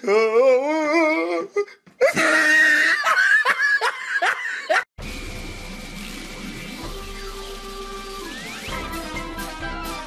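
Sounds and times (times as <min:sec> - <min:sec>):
person laughing: 0:02.0 - 0:04.9.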